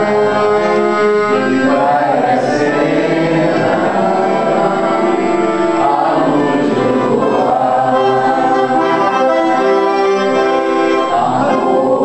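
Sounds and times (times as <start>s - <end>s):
piano accordion melody: 0.0s - 12.0s.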